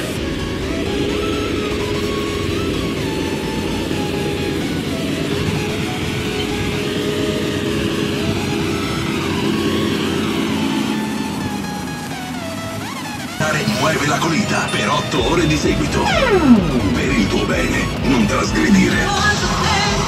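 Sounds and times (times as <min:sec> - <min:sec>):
music playing: 0:00.0 - 0:20.0
tractor engine running: 0:00.0 - 0:20.0.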